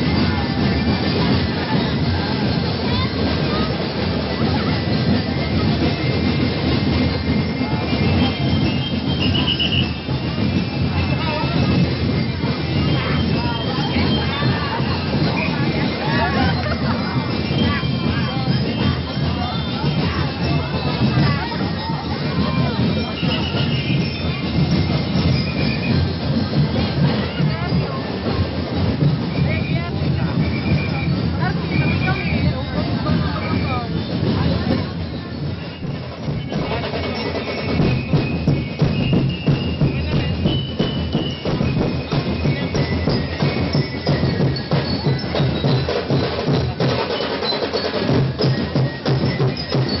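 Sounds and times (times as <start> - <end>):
crowd voices and shouts: 0.0 - 50.0
percussion band drumming: 0.0 - 50.0.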